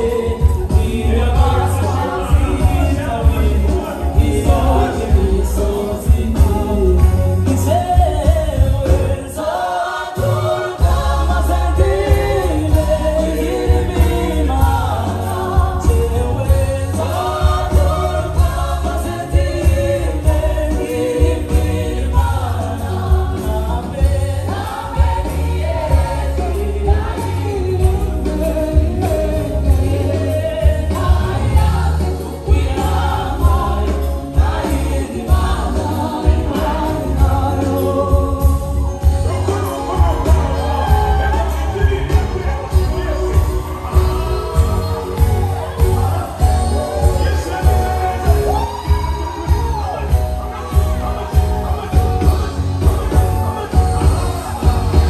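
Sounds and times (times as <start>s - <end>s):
heavy bass: 0.0s - 9.5s, 10.2s - 55.0s
choir singing: 0.0s - 55.0s
drums: 0.0s - 55.0s
keyboards: 0.0s - 55.0s.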